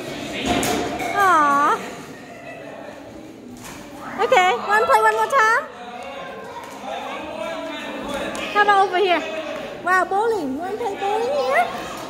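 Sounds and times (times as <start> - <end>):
hum of busy indoor hall: 0.0 - 12.0.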